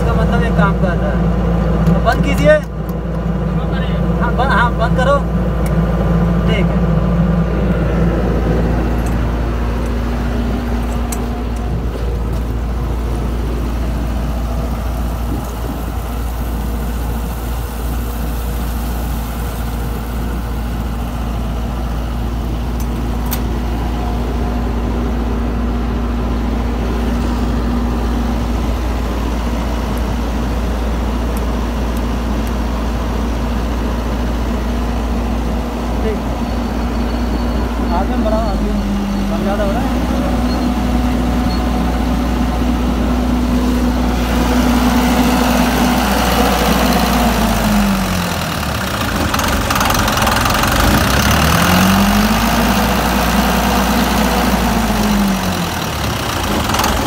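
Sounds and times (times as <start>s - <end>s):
engine running steadily: 0.0s - 57.0s.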